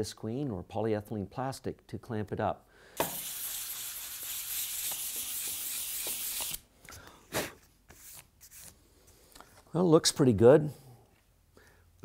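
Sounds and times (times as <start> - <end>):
sanding block scratching wood: 3.0 - 6.6.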